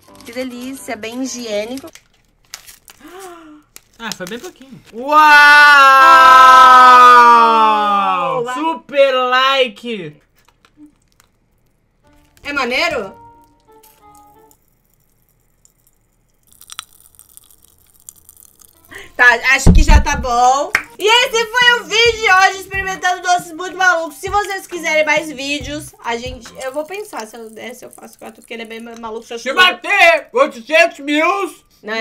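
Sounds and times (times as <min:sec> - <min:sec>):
plastic candy wrapper crinkling: 0:00.0 - 0:05.0, 0:10.2 - 0:12.5, 0:13.3 - 0:19.1, 0:26.5 - 0:29.4
mouth sounds of eating candy: 0:10.1 - 0:12.0, 0:14.0 - 0:19.2.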